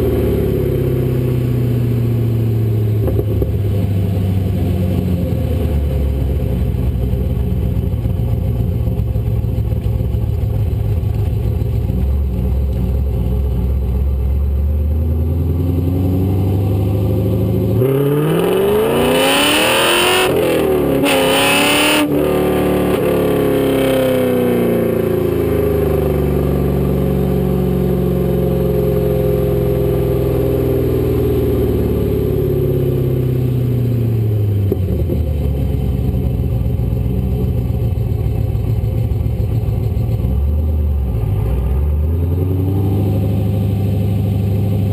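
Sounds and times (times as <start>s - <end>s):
car engine exhaust: 0.0s - 44.9s.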